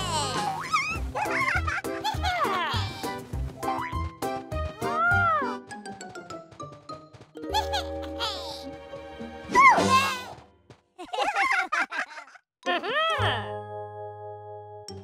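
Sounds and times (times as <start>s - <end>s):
cartoon character voice noises: 0.0s - 1.4s, 4.8s - 5.6s
playful children's music: 0.0s - 11.8s, 12.7s - 15.0s.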